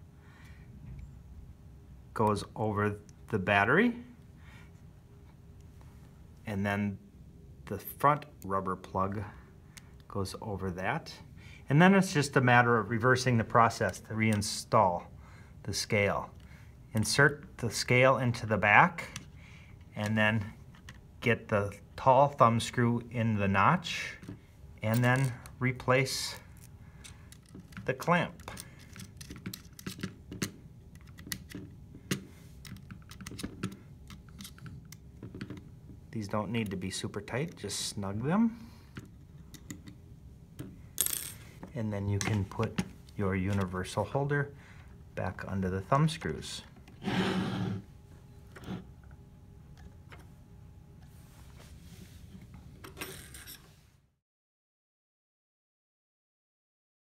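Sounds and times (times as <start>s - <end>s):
metal parts clicking and tapping: 24.2s - 25.6s, 26.2s - 35.7s, 38.9s - 40.0s.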